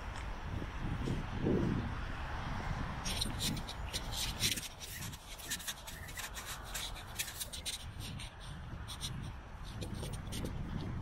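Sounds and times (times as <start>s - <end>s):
low wind rumble: 0.0s - 11.0s
handling noise on camera: 3.0s - 11.0s.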